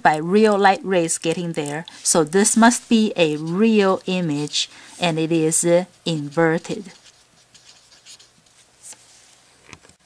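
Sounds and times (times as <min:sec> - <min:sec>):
marker scratching on paper: 0:01.2 - 0:09.0.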